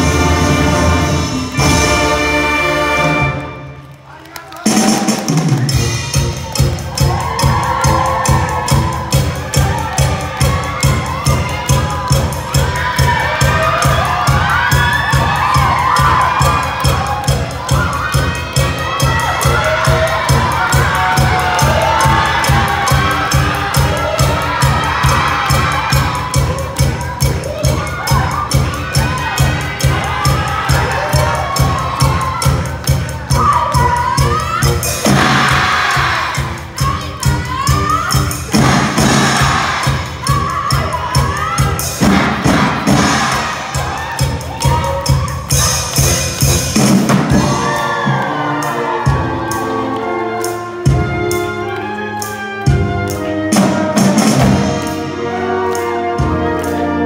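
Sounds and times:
people shouting and cheering: 0:00.0 - 0:57.0
quick drum beat: 0:04.7 - 0:48.1.

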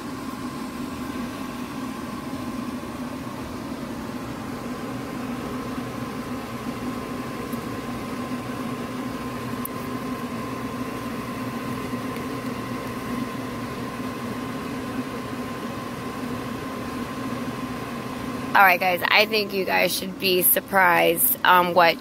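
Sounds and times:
machine hum with whine: 0:00.0 - 0:22.0.

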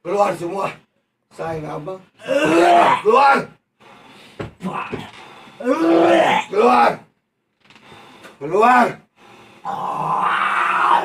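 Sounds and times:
person growling: 0:09.6 - 0:11.0.

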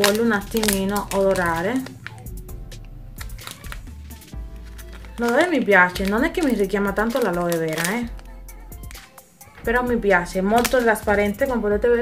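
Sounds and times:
plastic wrapper crinkling: 0:00.0 - 0:11.6
quiet background music: 0:00.0 - 0:12.0.

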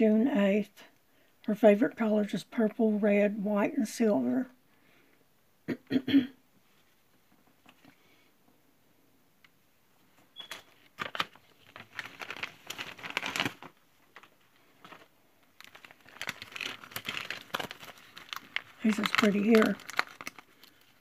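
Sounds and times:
paper and cellophane crinkling: 0:10.4 - 0:21.0.

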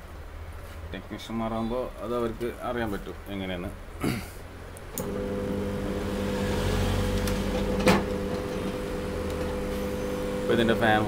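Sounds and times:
microwave mains hum: 0:04.8 - 0:11.0.

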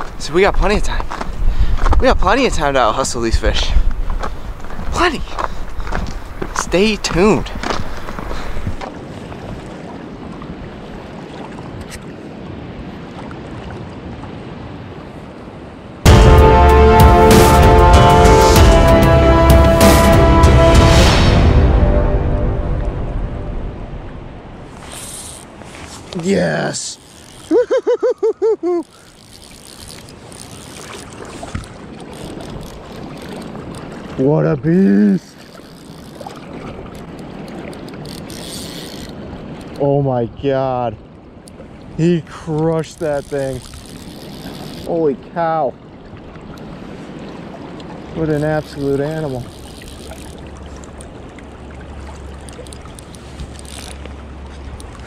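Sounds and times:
wind on microphone: 0:00.0 - 0:16.1
river current rushing: 0:04.0 - 0:40.0, 0:41.0 - 0:55.0
man laughing excitedly: 0:27.5 - 0:28.9
river water rushing: 0:41.0 - 0:55.0.

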